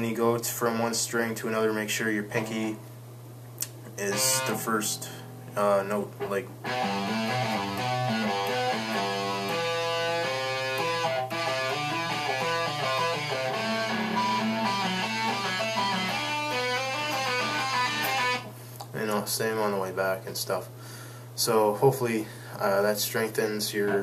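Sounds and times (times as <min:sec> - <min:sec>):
steady low hum: 0:00.0 - 0:24.0
electric guitar single notes: 0:04.0 - 0:18.5.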